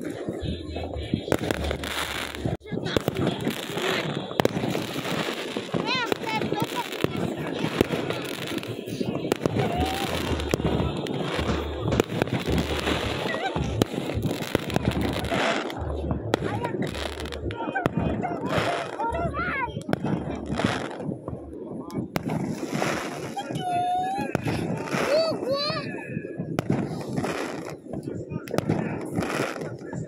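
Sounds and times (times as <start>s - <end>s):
rough crunching noise: 0.0s - 23.4s
fireworks popping and crackling: 0.0s - 30.0s.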